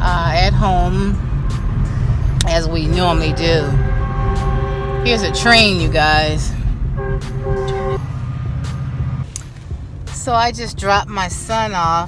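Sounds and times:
car cabin rumble: 0:00.0 - 0:12.0
train horn chord: 0:02.8 - 0:08.2.

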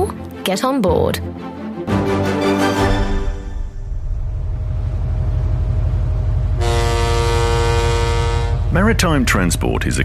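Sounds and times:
low pulsing rumble: 0:03.5 - 0:10.0
ship's horn blast: 0:06.4 - 0:08.8.

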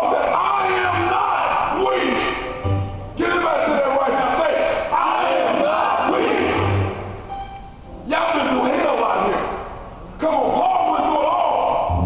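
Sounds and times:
man shouting preaching: 0:00.0 - 0:02.6, 0:03.2 - 0:06.8, 0:08.0 - 0:09.6, 0:10.2 - 0:12.0
crowd calling out: 0:00.0 - 0:07.1.

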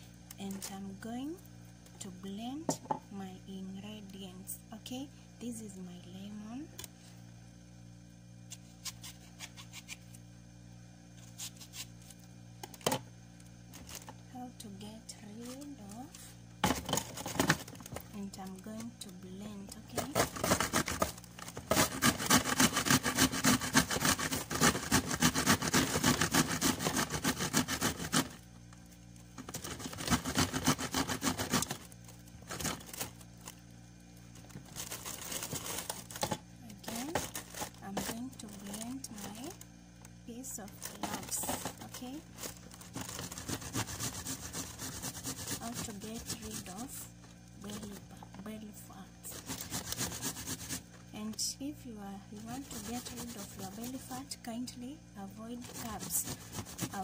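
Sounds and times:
food grated on a grater: 0:19.7 - 0:28.4, 0:29.4 - 0:31.8, 0:40.8 - 0:47.0, 0:49.3 - 0:50.9, 0:52.4 - 0:54.3, 0:55.6 - 0:57.0.

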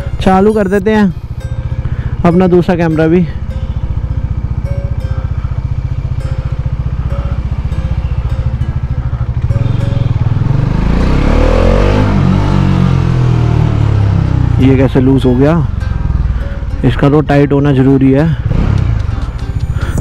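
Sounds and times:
motorcycle engine running: 0:00.0 - 0:20.0
wind and road noise: 0:00.0 - 0:20.0.

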